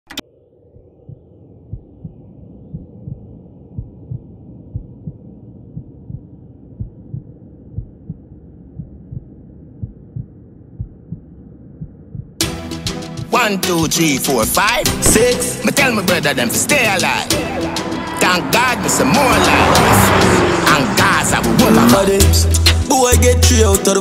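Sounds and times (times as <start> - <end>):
dark steady hum: 0.1 - 12.4
deep heartbeat-like thumps: 0.8 - 12.5.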